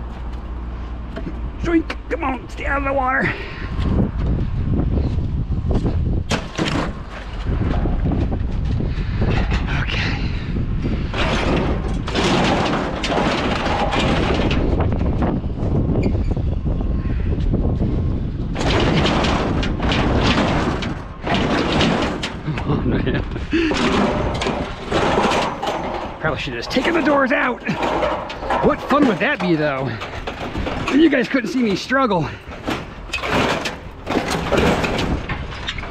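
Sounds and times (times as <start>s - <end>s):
steady low rumble: 0.0s - 35.9s
scrap metal clanking and banging: 5.7s - 35.9s.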